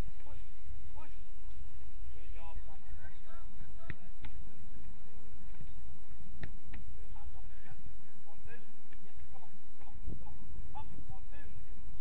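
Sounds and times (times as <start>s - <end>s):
steady low rumble: 0.0s - 12.0s
soccer ball kick thuds: 3.7s - 7.8s, 8.5s - 10.0s.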